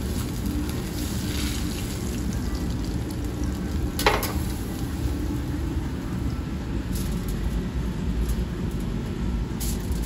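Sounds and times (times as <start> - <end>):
kitchen machinery rumbling: 0.0 - 6.2.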